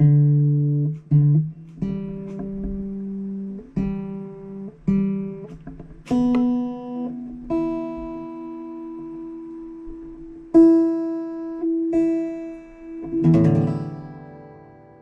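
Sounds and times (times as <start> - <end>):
acoustic guitar notes plucked: 0.0 - 15.0
guitar chord strummed: 0.0 - 15.0.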